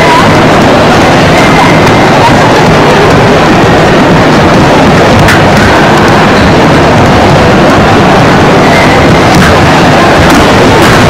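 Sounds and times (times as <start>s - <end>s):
distorted roar of hall noise: 0.0s - 11.0s.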